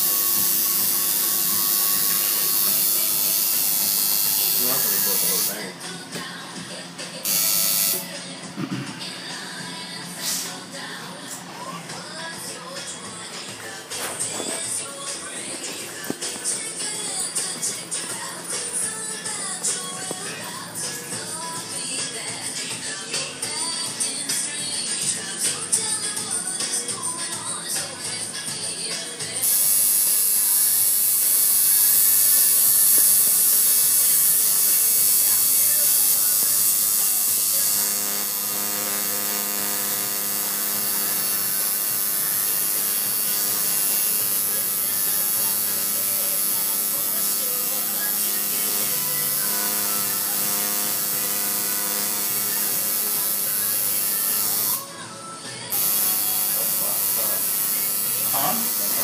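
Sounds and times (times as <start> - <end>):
tattoo machine buzzing: 0.0 - 5.8, 7.2 - 8.2, 29.2 - 54.9, 55.6 - 59.0.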